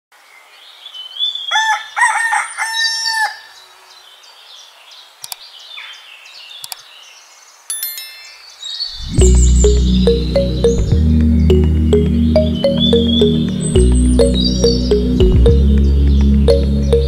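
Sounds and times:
rooster crowing: 1.5s - 3.6s
short high chime: 7.7s - 9.2s.

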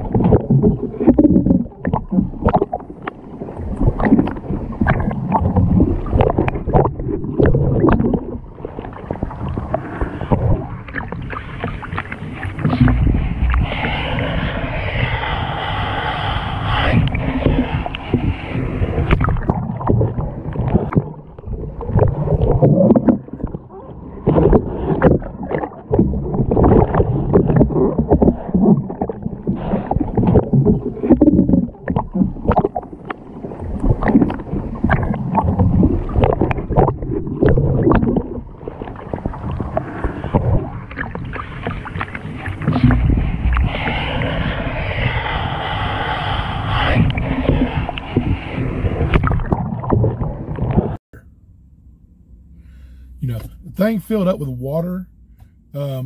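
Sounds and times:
muffled water sloshing and splashing: 0.0s - 51.0s
steady rushing water: 0.0s - 51.0s.

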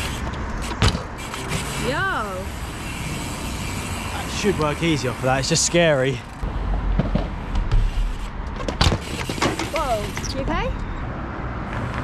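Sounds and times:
bike tyres rolling on tarmac: 0.0s - 10.4s
bike landing thump on asphalt: 6.7s - 8.0s.

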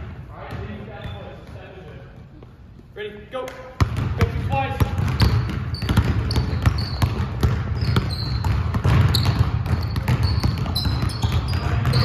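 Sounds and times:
basketballs bouncing on gym floor: 0.0s - 12.0s
sneakers squeaking on court: 0.5s - 2.9s, 3.8s - 12.0s.

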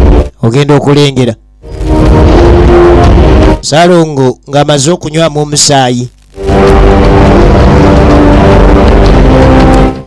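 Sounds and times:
heavy rumbling noise: 0.0s - 0.4s, 1.6s - 3.8s, 6.2s - 10.0s
dramatic film soundtrack: 1.6s - 3.7s, 6.4s - 10.0s.

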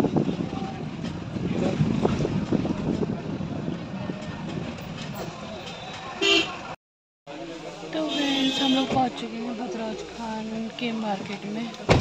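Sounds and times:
vehicle road noise: 0.0s - 12.0s
vehicle horn toot: 5.7s - 6.6s.

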